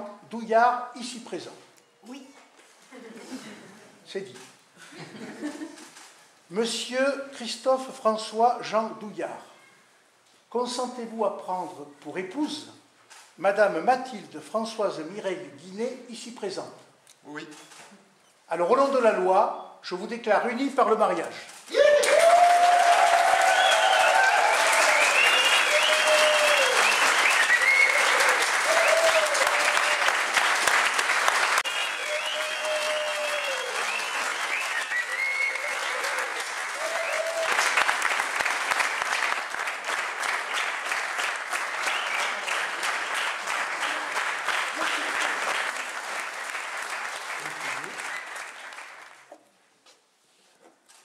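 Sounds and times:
crowd applauding: 21.7 - 49.3.

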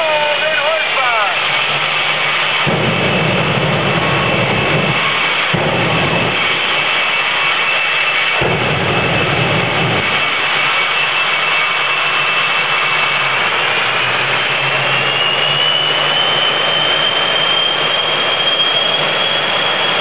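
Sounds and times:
high engine whine: 0.0 - 20.0
jet engine roaring: 0.0 - 20.0.

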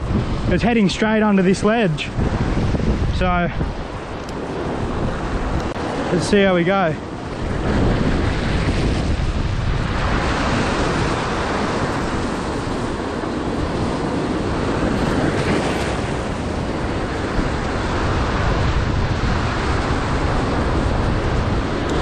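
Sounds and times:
waves breaking against rocks: 0.0 - 22.0.

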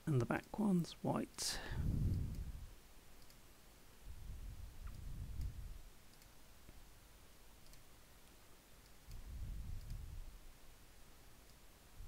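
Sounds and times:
faint computer mouse clicks: 3.2 - 3.4, 4.8 - 6.8, 7.6 - 7.9, 8.8 - 10.1.

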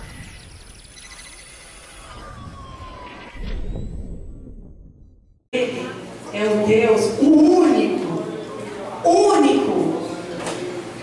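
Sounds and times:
gliding electronic tones: 0.0 - 4.6
low boom: 2.5 - 5.5.

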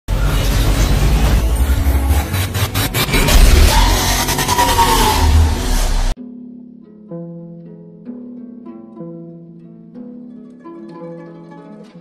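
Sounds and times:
rumbling hissing blast: 0.5 - 6.2.

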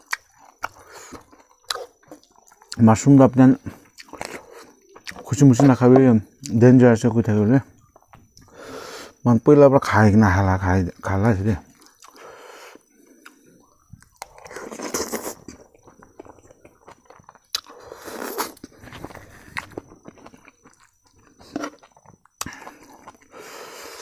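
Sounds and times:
person chewing food: 0.0 - 6.6, 7.8 - 8.8, 11.7 - 24.0.

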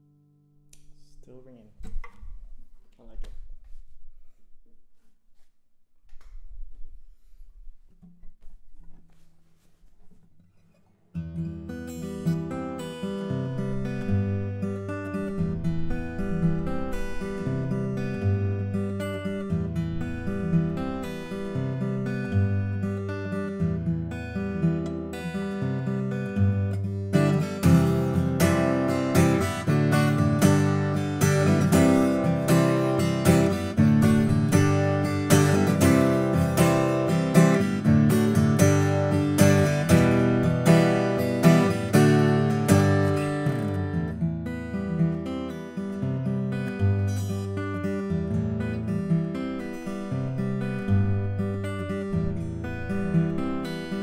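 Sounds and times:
fingerstyle acoustic guitar: 1.8 - 54.0.

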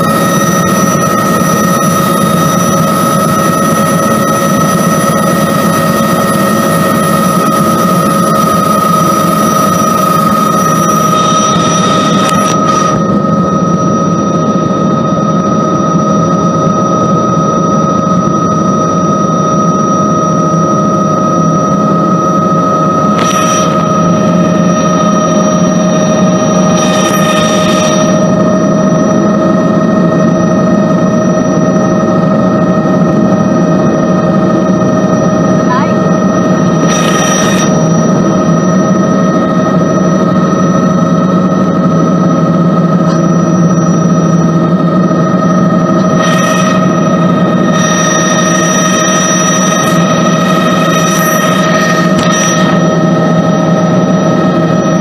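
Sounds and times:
helicopter turbine whine: 0.0 - 55.0.

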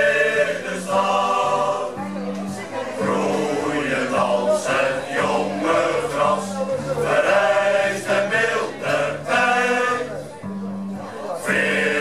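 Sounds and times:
male choir singing a shanty: 0.0 - 10.4, 11.3 - 12.0.

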